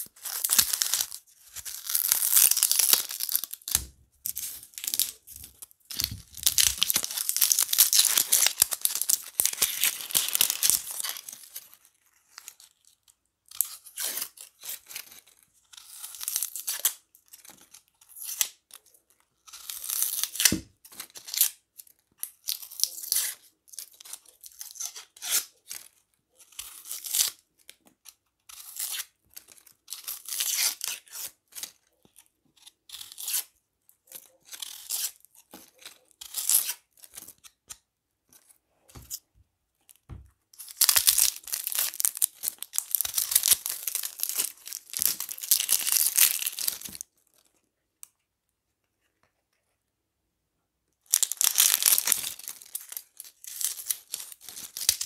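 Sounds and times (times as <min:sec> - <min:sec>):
onion skins crackling as torn: 0:00.2 - 0:11.5, 0:40.6 - 0:47.0, 0:51.1 - 0:55.0.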